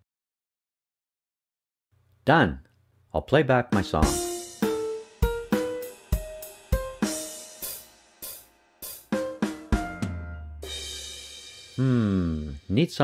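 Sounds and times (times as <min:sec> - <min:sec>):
drum kit pattern: 0:03.7 - 0:12.9
piano notes: 0:03.9 - 0:07.6, 0:09.1 - 0:10.6.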